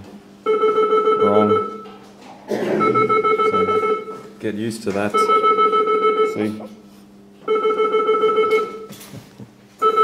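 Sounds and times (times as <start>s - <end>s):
electronic alarm ringing: 0.4s - 1.9s, 2.8s - 4.3s, 5.1s - 6.5s, 7.4s - 9.0s, 9.8s - 10.0s.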